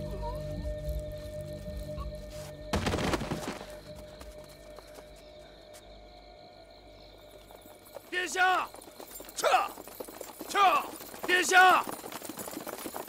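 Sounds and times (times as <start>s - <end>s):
horses approaching: 0.9s - 5.9s, 6.7s - 13.0s
riders shouting: 8.1s - 8.8s, 9.4s - 12.0s.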